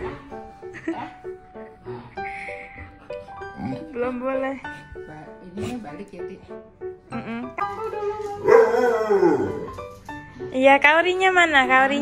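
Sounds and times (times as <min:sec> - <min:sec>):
background music: 0:00.0 - 0:12.0
dog howling: 0:07.9 - 0:09.8.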